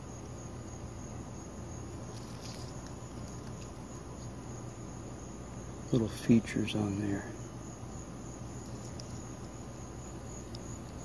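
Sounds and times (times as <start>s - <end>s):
insects trilling: 0.0s - 11.0s
low background hum: 0.0s - 11.0s
leaves rustling: 1.8s - 4.5s.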